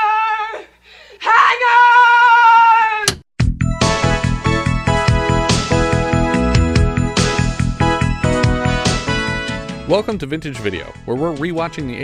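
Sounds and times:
synth music with steady beat: 3.4 - 9.9.

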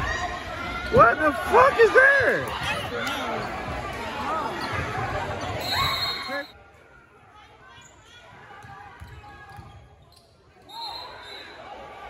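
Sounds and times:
spectators' voices in echoing hall: 0.0 - 12.0.

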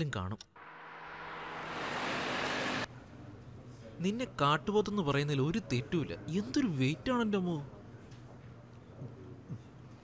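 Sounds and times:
rush of noise: 0.6 - 2.9.

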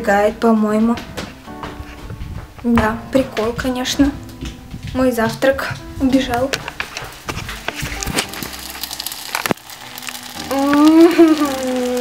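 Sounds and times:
clicks and knocks: 2.4 - 8.5
porridge sizzling on hot stove: 5.9 - 12.0.

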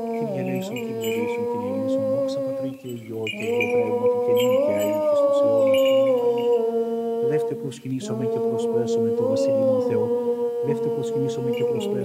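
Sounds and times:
cantor chanting long note: 0.0 - 12.0
low sung drone: 0.0 - 12.0.

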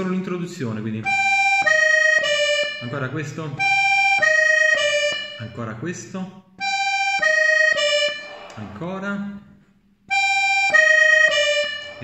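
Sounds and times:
button accordion melody: 1.0 - 6.0, 6.6 - 8.8, 10.1 - 12.0.

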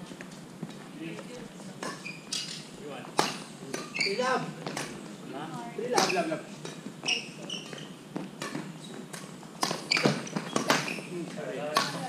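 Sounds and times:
rackets hitting shuttlecock: 3.2 - 4.0, 5.9 - 6.9, 7.6 - 12.0.

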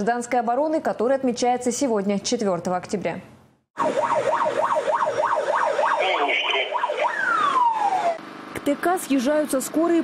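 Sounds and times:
fire engine siren yelping: 3.8 - 8.3.

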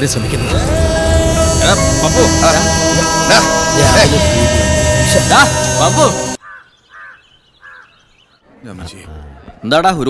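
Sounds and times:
background music: 0.0 - 6.4
bird calling: 6.4 - 8.4.

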